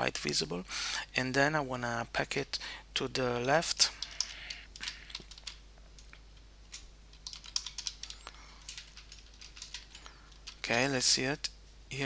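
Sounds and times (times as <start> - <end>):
faint low hum: 0.0 - 12.0
keyboard typing: 3.9 - 10.8.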